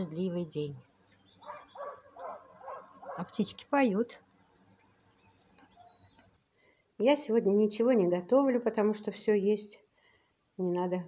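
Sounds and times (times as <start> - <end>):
distant dogs barking: 1.4 - 3.5.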